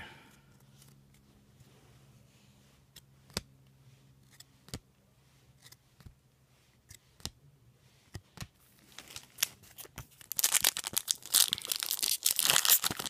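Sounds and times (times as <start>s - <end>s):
faint steady hum: 0.0s - 13.0s.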